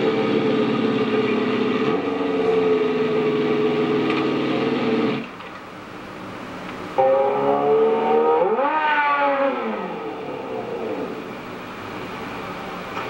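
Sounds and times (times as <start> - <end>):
motorcycle engine revving: 0.0 - 5.3, 7.0 - 11.4.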